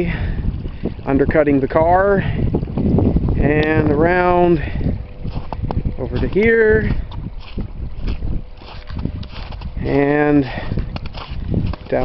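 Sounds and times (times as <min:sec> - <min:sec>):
wind buffeting microphone: 0:00.0 - 0:12.0
footsteps on snow and mud: 0:04.5 - 0:12.0.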